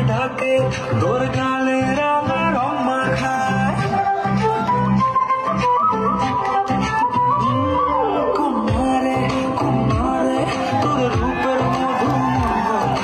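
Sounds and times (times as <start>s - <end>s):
dance music with steady beat: 0.0s - 7.5s, 8.3s - 13.0s.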